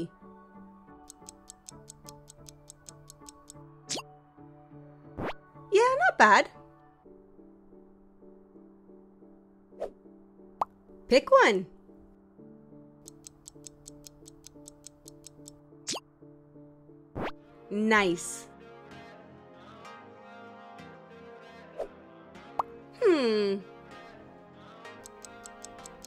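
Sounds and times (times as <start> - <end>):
soft background music: 0.0 - 26.0
rapid clock ticking: 1.1 - 3.6, 13.0 - 15.6, 25.0 - 26.0.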